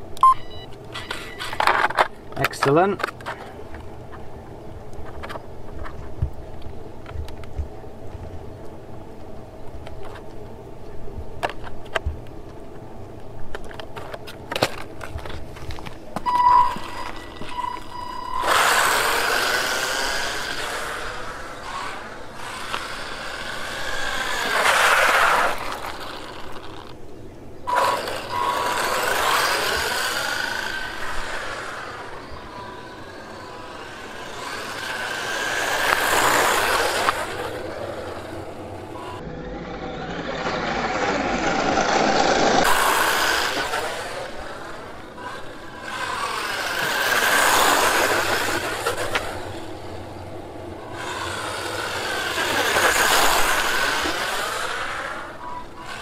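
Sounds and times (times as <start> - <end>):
toy car electric motor running: 16.3 - 27.0, 27.7 - 56.0.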